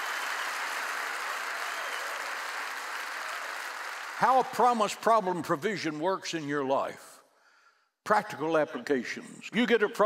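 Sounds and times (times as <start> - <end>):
congregation applauding: 0.0 - 5.3.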